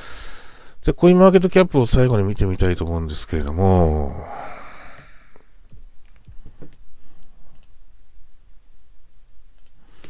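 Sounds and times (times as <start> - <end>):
man talking: 0.8 - 4.5
man's breathy exhale: 4.2 - 5.4.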